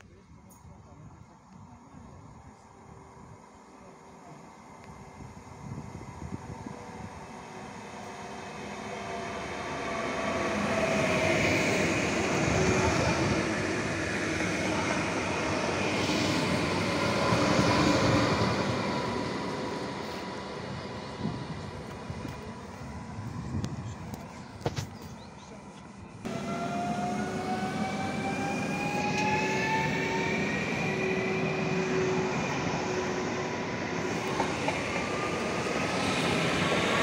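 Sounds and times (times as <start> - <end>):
train wheels rumbling on rails: 4.2 - 37.0.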